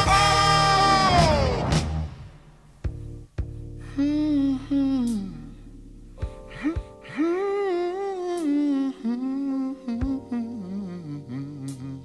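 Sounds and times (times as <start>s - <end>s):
sustained keyboard chords: 2.7s - 12.0s
slowed hummed vocal moan: 3.8s - 5.9s, 6.5s - 12.0s.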